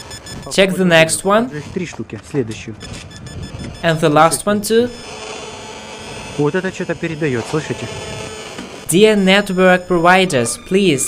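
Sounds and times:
person talking: 0:00.4 - 0:02.8, 0:03.8 - 0:05.0, 0:08.9 - 0:11.0
electrical buzz and hiss with tones: 0:02.8 - 0:11.0.

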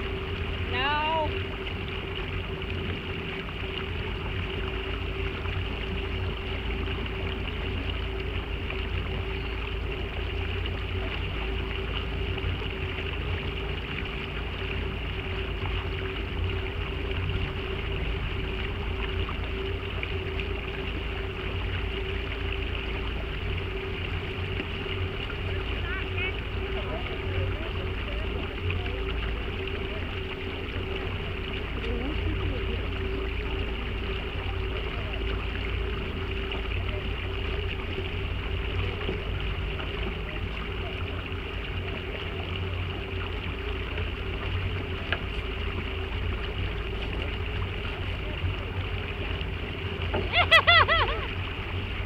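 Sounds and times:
boat motor running: 0:00.0 - 0:52.0
water noise: 0:00.0 - 0:52.0
wind: 0:00.0 - 0:52.0.

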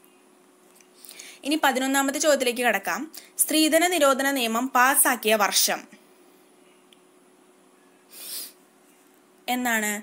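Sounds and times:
person breathing: 0:01.0 - 0:01.4, 0:08.1 - 0:08.6.

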